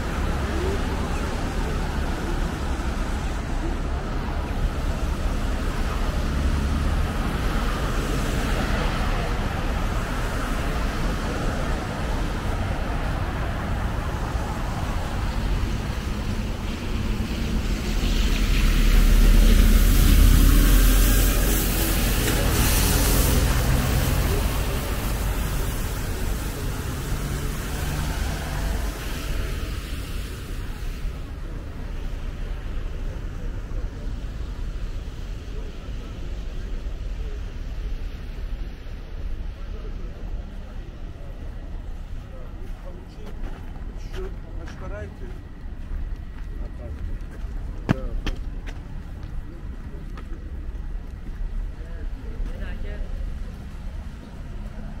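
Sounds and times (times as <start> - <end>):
cars driving past: 0.0 - 55.0.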